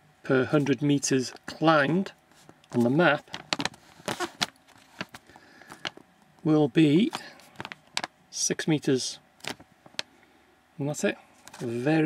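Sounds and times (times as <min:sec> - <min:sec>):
card clicking and rustling on paper: 0:02.4 - 0:06.0, 0:07.1 - 0:08.1.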